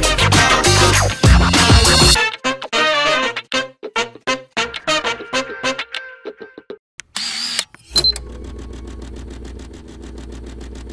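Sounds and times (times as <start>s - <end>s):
brass jazz music: 0.0s - 5.8s
engine starting and idling: 7.9s - 10.9s.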